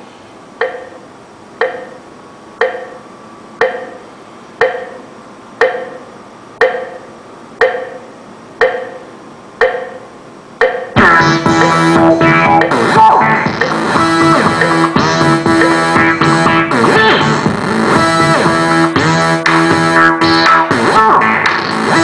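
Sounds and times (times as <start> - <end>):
clock ticking: 0.6 - 17.1.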